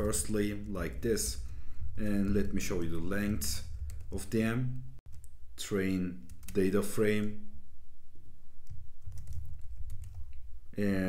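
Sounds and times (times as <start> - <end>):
computer keyboard keystrokes: 8.7 - 10.4.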